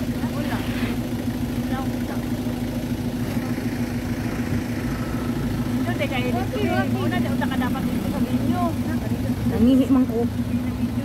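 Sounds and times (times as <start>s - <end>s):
scooter engine running: 0.0s - 11.0s.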